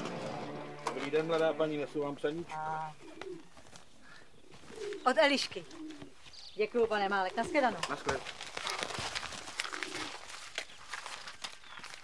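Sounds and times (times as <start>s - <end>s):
bird cooing: 2.9s - 6.2s, 9.6s - 10.2s.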